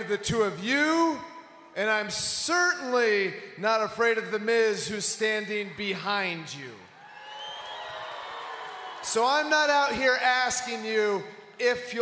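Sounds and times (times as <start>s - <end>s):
crowd cheering: 6.9s - 10.8s
thin whistle: 7.1s - 8.0s.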